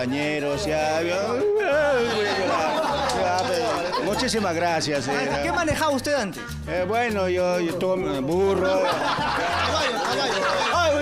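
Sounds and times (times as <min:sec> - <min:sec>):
faint band music: 0:00.0 - 0:11.0
men chattering and laughing: 0:00.9 - 0:11.0.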